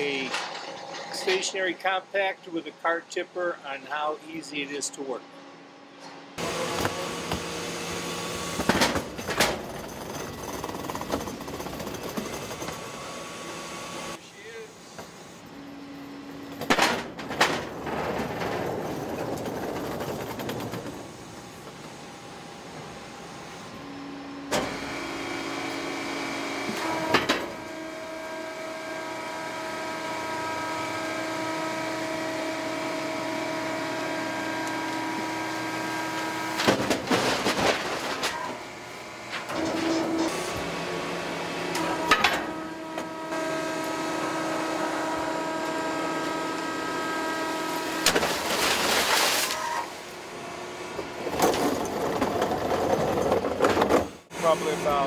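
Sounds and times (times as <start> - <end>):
powered lift humming: 4.0 - 48.6
bin clattering as it dumps: 36.6 - 38.5, 51.3 - 54.2.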